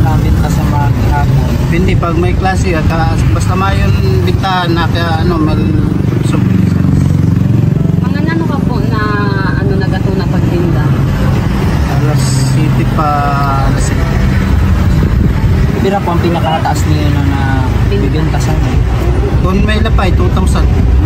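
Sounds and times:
man talking: 0:00.0 - 0:07.0, 0:11.8 - 0:14.2, 0:15.6 - 0:21.0
vehicle engine rumble: 0:00.0 - 0:21.0.

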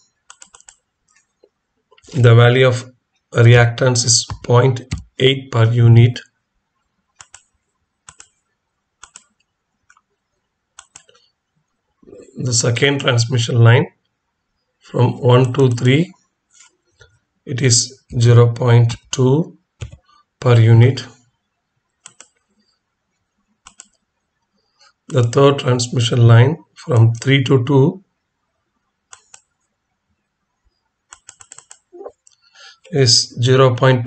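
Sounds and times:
computer mouse clicks: 0:00.2 - 0:01.4, 0:07.2 - 0:08.4, 0:09.0 - 0:10.1, 0:10.8 - 0:11.3, 0:19.8 - 0:20.1, 0:22.0 - 0:22.6, 0:23.6 - 0:24.1, 0:29.1 - 0:29.7, 0:31.1 - 0:32.5.

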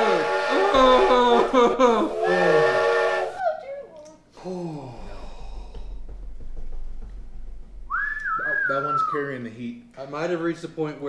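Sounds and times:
person blowing whistle-like note: 0:00.0 - 0:03.5, 0:07.9 - 0:09.2
low steady rumble: 0:04.8 - 0:08.6.

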